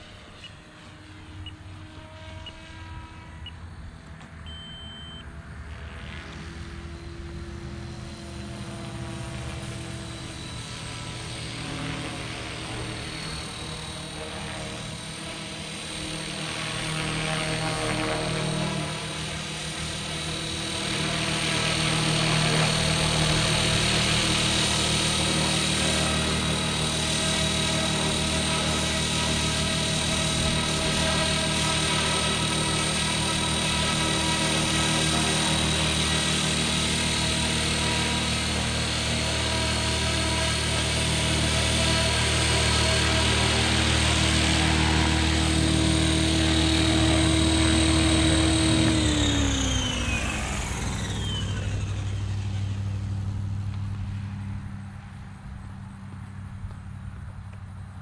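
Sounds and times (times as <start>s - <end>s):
rc helicopter motor whine: 0.0s - 58.0s.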